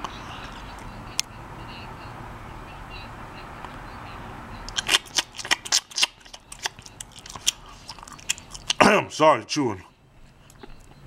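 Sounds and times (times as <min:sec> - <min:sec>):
crunchy chewing: 0:04.6 - 0:08.8.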